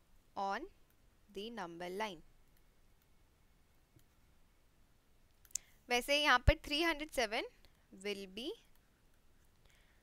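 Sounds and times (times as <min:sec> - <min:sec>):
woman speaking: 0:00.4 - 0:02.3, 0:05.9 - 0:08.8.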